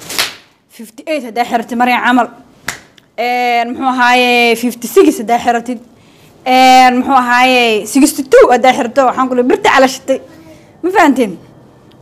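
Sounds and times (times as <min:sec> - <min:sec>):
woman speaking: 0:00.7 - 0:02.4, 0:03.2 - 0:11.5.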